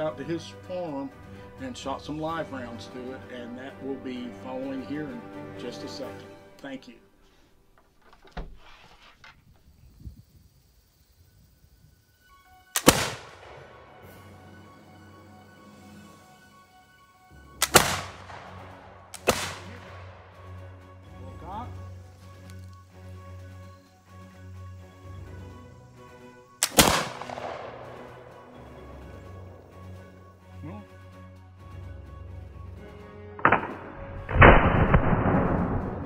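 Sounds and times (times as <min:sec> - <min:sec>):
musket firing: 0:12.7 - 0:13.8, 0:17.6 - 0:20.2, 0:26.6 - 0:28.4, 0:33.4 - 0:36.0
flintlock pan igniting crack: 0:12.7 - 0:14.2, 0:17.6 - 0:20.4, 0:22.0 - 0:22.9, 0:26.6 - 0:30.0, 0:33.4 - 0:36.0
short sharp snap: 0:19.1 - 0:19.9, 0:26.6 - 0:27.3.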